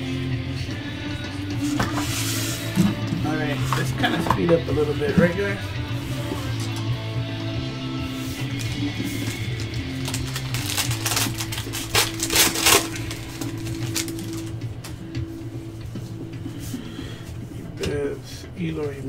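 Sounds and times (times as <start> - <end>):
background music with low notes: 0.0 - 19.0
cards being handled: 8.1 - 15.1
foil card pack tearing: 8.3 - 14.6.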